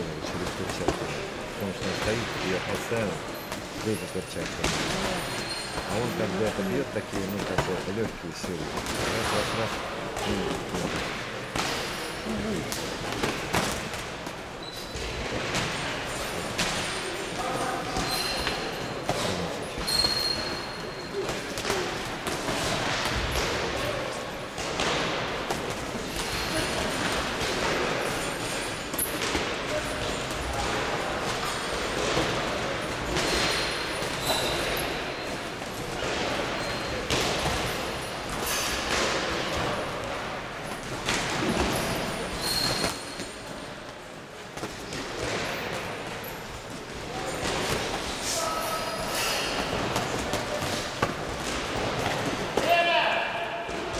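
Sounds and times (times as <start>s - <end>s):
brief high squeaks: 19.8s - 21.0s, 42.4s - 43.2s.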